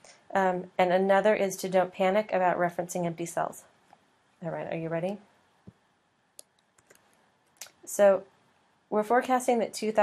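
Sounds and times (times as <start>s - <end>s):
person speaking: 4.4s - 5.3s
keyboard and mouse clicks: 6.4s - 7.8s.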